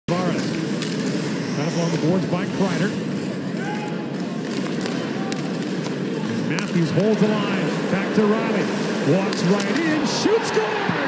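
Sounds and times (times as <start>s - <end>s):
arena crowd noise: 0.1s - 11.0s
sports commentary: 0.1s - 11.0s.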